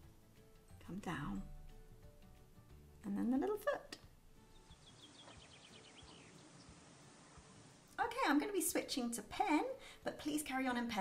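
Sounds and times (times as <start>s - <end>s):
soft hiss: 4.0s - 8.2s.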